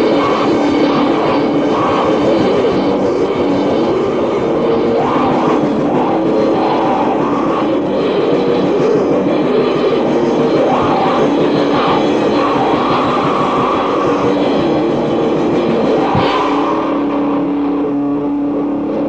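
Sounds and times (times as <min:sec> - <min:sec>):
distorted black metal music: 0:00.0 - 0:19.0.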